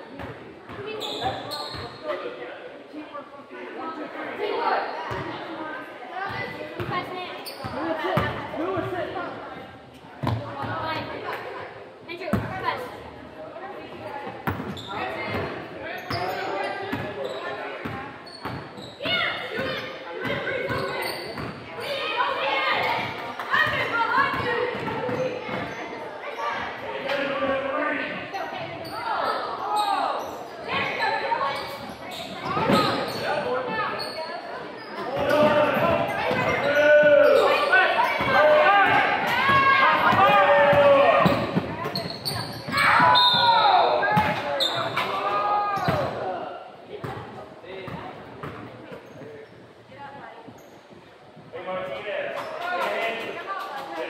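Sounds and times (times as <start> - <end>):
people shouting in a gym: 19.0 - 27.4, 28.0 - 46.7.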